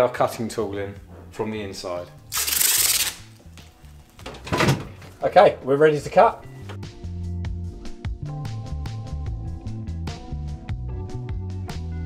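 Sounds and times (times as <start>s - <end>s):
masking tape ripping off roll: 2.3s - 3.4s.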